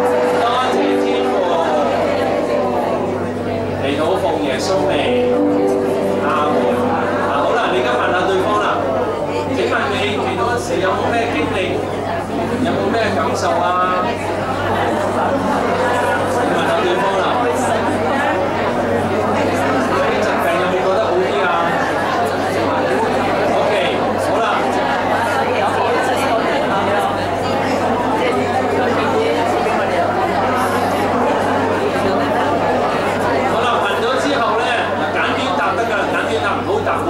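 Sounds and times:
crowd praying aloud: 0:00.0 - 0:37.0.

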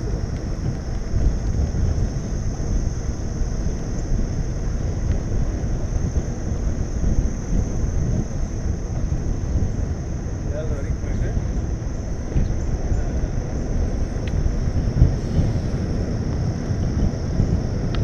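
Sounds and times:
tyre noise on pavement: 0:00.0 - 0:18.0
wind buffeting microphone: 0:00.0 - 0:18.0.

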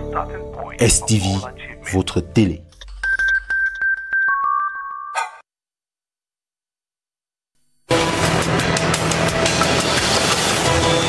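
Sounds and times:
news theme music with drum hits: 0:07.9 - 0:11.0.

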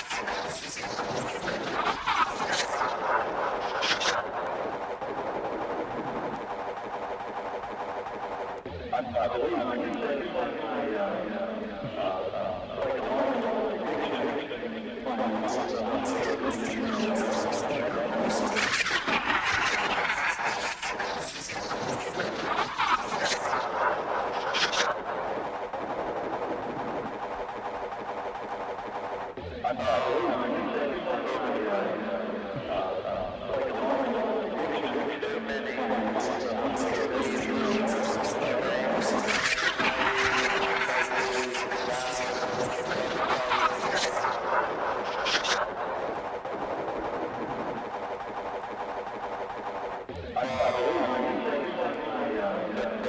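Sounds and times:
ambient electronic music: 0:00.0 - 0:53.0.

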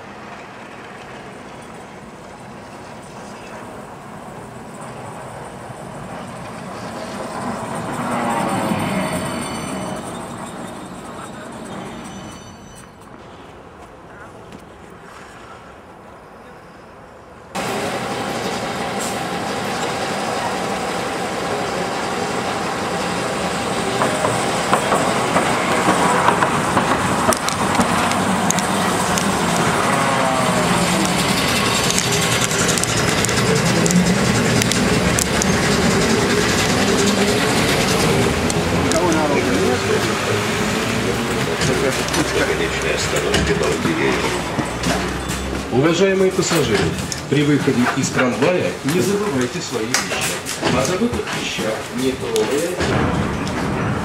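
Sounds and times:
tram wheels on rails: 0:00.0 - 0:54.0
tram motor whining: 0:00.4 - 0:13.3, 0:17.6 - 0:54.0.

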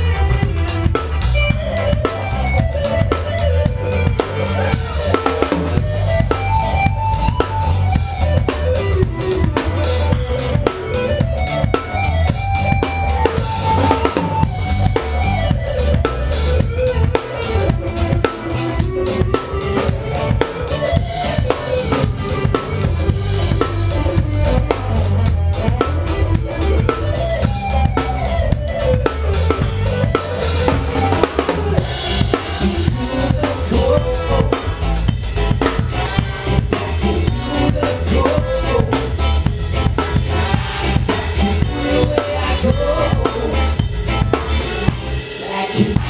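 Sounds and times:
drums: 0:00.0 - 0:46.0
ska band playing: 0:00.0 - 0:46.0.

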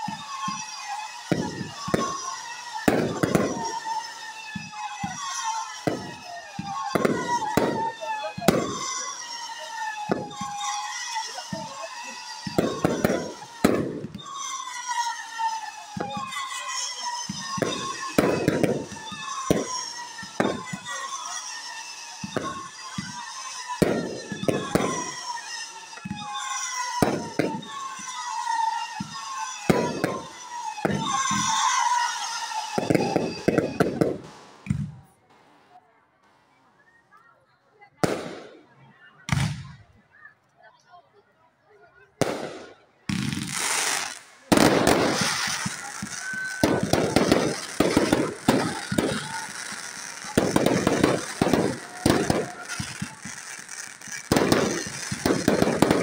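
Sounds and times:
falling firework whistles: 0:00.0 - 0:35.7, 0:37.9 - 0:40.4, 0:41.9 - 0:56.0
fireworks bangs and pops: 0:00.0 - 0:35.7, 0:37.9 - 0:40.2, 0:42.2 - 0:56.0.

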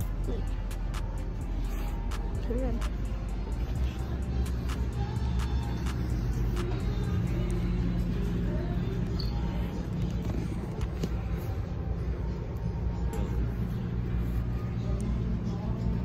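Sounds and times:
background music: 0:00.0 - 0:16.0
low traffic rumble: 0:00.0 - 0:16.0.

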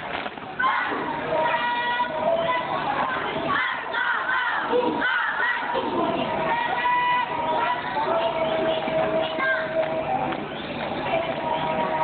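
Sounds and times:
crowd background noise: 0:00.0 - 0:12.0
students shouting in unison: 0:00.6 - 0:02.1, 0:03.5 - 0:05.9.

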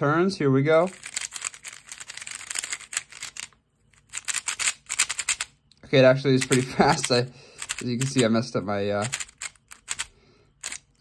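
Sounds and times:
plastic clicks of puzzle cube turning: 0:00.9 - 0:05.5, 0:06.4 - 0:08.3, 0:09.0 - 0:11.0.

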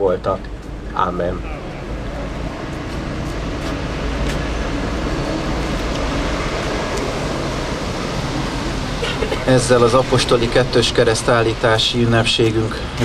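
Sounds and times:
road traffic rumble: 0:00.0 - 0:13.0.

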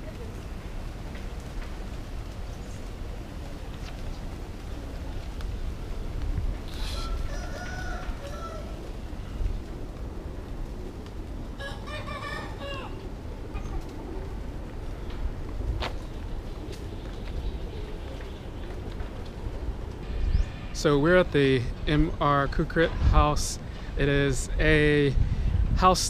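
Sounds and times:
steady low rumble: 0:00.0 - 0:11.9, 0:12.9 - 0:26.0
drawn-out bird calls: 0:06.6 - 0:09.8.

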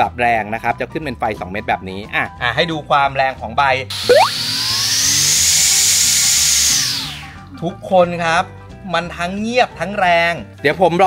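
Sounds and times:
brushcutter motor whining: 0:03.9 - 0:07.5.

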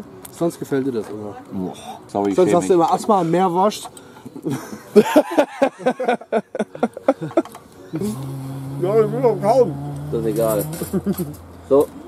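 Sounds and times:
men laughing: 0:04.2 - 0:11.5.

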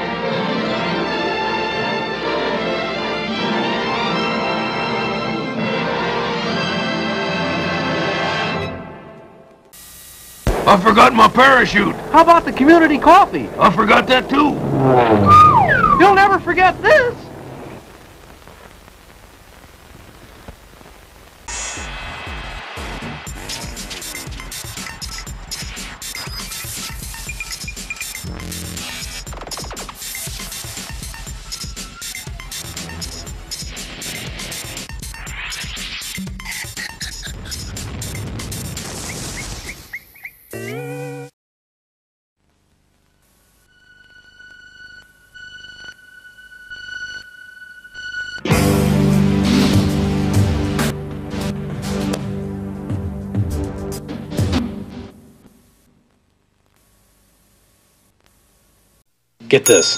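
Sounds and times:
electronic tv jingle: 0:10.6 - 0:17.3
high held tone: 0:13.3 - 0:17.3, 0:59.5 - 0:59.9
faint hiss: 0:16.2 - 0:21.9.

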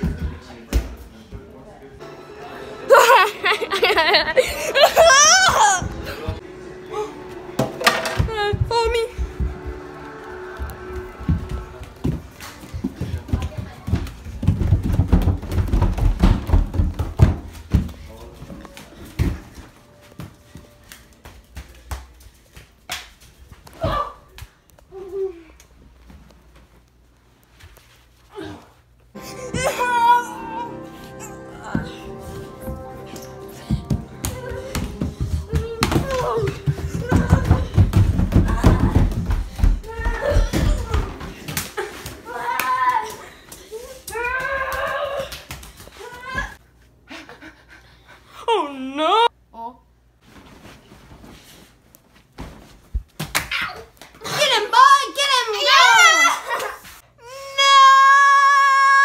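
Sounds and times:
child crying out: 0:04.9 - 0:05.9, 0:29.3 - 0:30.8, 0:57.2 - 0:59.0
people running footfalls: 0:08.2 - 0:24.4, 0:31.8 - 0:46.6.

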